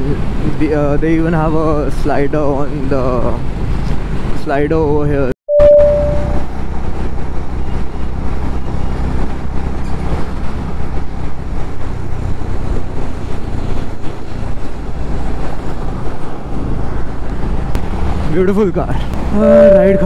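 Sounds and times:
road noise: 0.0s - 20.0s
wind noise: 6.0s - 20.0s.

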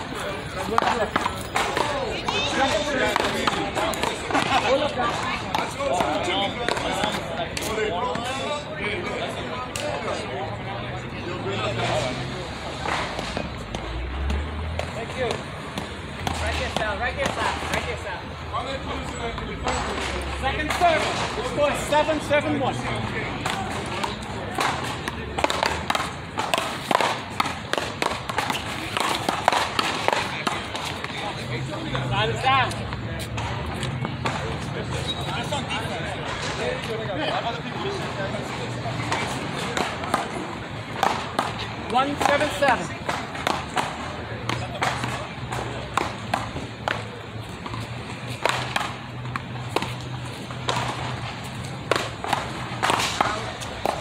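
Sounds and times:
players talking: 0.0s - 54.0s.

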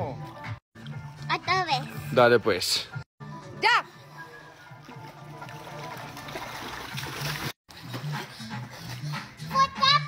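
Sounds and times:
background music with bass line: 0.0s - 10.0s
water splashing in swimming pool: 4.6s - 8.2s.

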